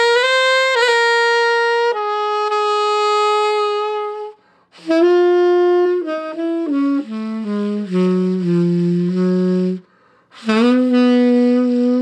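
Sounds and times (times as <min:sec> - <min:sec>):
tenor saxophone melody: 0:00.0 - 0:12.0.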